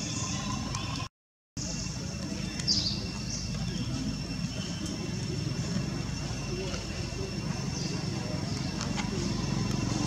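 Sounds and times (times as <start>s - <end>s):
high-pitched whine: 0.0s - 10.0s
outdoor background rumble: 1.6s - 10.0s.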